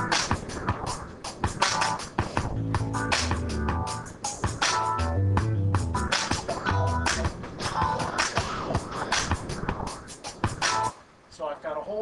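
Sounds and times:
synth bass: 0.0s - 0.3s, 2.4s - 8.2s
electric piano: 0.0s - 9.2s, 10.6s - 11.0s
drum machine beat: 0.0s - 11.0s.

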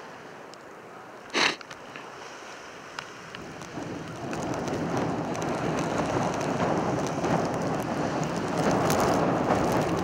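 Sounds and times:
storm wind on microphone: 3.0s - 10.0s.

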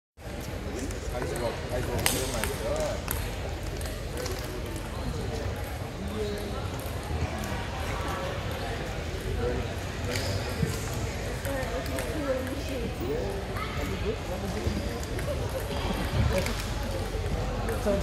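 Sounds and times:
people talking: 0.3s - 18.0s.

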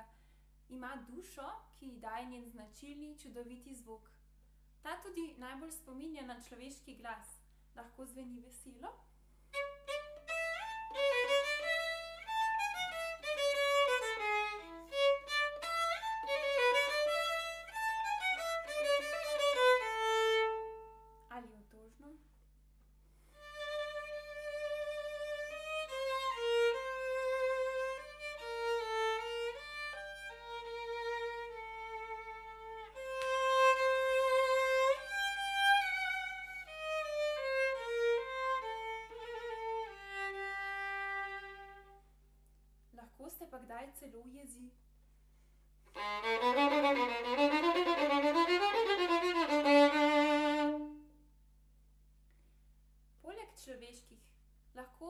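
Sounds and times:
solo violin: 9.5s - 21.3s, 23.3s - 42.1s, 45.9s - 51.2s.

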